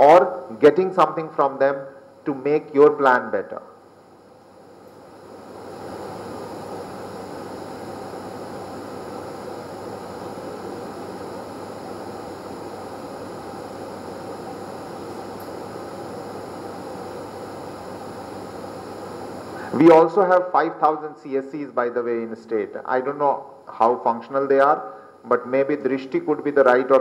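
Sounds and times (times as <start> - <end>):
steady background hiss: 0.0 - 27.0.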